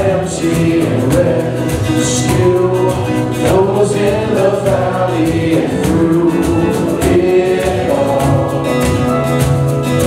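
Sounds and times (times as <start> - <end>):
acoustic guitar: 0.0 - 10.0
keyboard: 0.0 - 10.0
steady percussion beat: 0.0 - 10.0
voices singing: 0.0 - 10.0.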